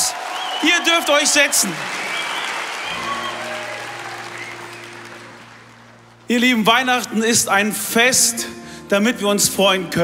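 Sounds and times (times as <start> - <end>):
large audience applauding: 0.0 - 6.3.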